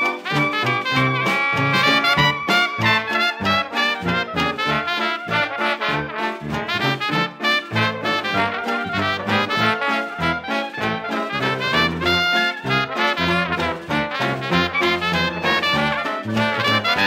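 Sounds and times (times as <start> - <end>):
banjo: 0.0 - 17.0
clarinet: 0.0 - 17.0
jazz band playing: 0.0 - 17.0
trombone: 0.0 - 17.0
trumpet: 0.0 - 17.0
tuba bass: 0.0 - 17.0.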